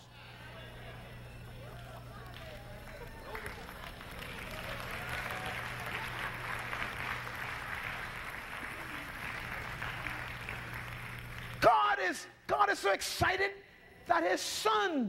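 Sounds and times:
audience applauding: 0:01.8 - 0:11.7.

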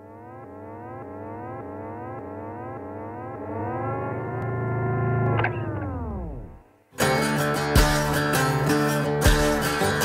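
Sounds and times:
siren-like rising tone: 0:00.0 - 0:06.7
steady low hum: 0:00.0 - 0:06.9.

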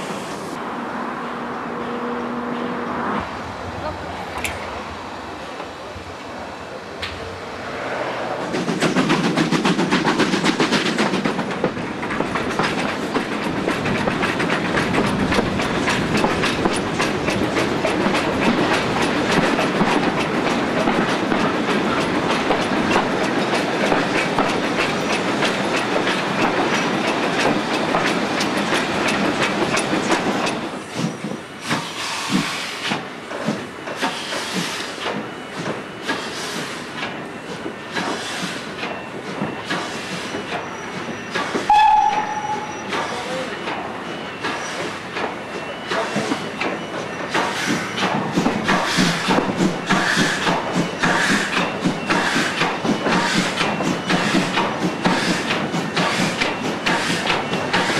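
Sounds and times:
train wheels clattering over rail joints: 0:08.4 - 0:57.9.

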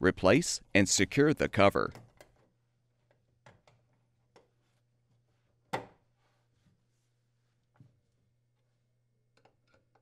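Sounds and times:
faint metal clicks and taps: 0:09.3 - 0:10.0.

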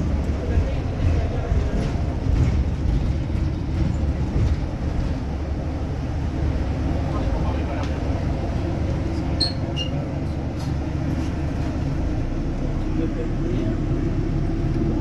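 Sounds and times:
bus engine and road rumble: 0:00.0 - 0:15.0.

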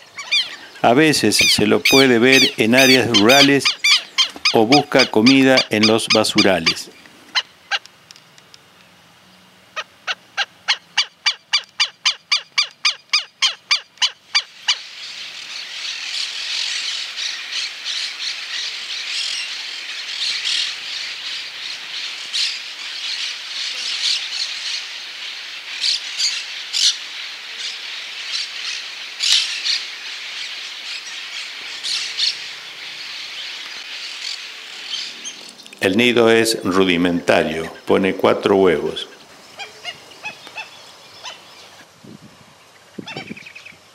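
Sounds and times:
bird yelping calls: 0:00.0 - 0:07.9, 0:09.8 - 0:24.9, 0:38.8 - 0:41.8, 0:43.0 - 0:43.8
many birds chattering: 0:00.0 - 0:07.9, 0:09.8 - 0:41.9, 0:42.7 - 0:43.8.

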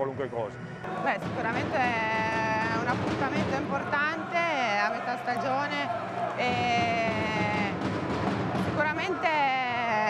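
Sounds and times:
woman's voice: 0:01.0 - 0:07.8, 0:08.8 - 0:10.0.

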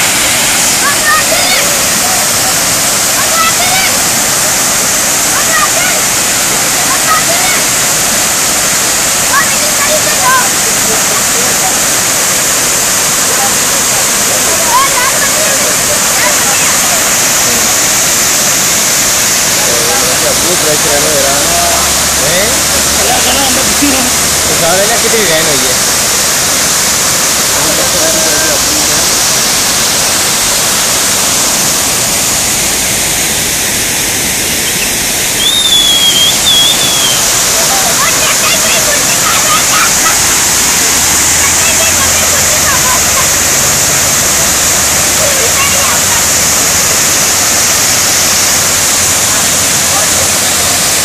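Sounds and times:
water rushing over a weir: 0:00.0 - 0:51.0.

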